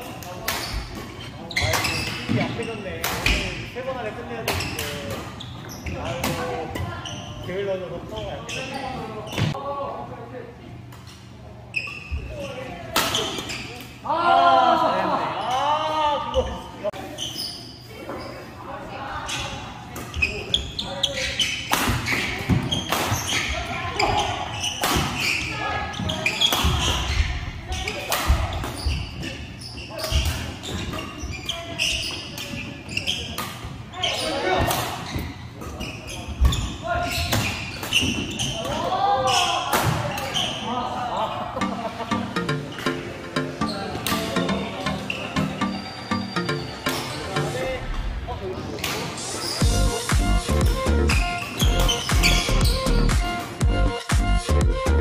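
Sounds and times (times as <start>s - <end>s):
players' voices: 0.0s - 55.0s
background music with a beat: 41.6s - 47.6s, 49.6s - 55.0s.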